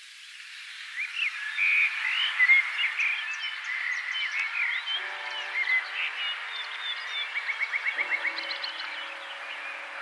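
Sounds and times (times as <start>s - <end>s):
high chirping calls: 5.0s - 10.0s.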